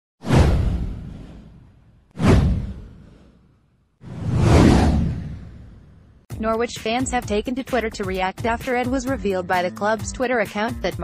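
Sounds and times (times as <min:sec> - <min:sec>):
whoosh with low rumble: 0:00.2 - 0:06.3.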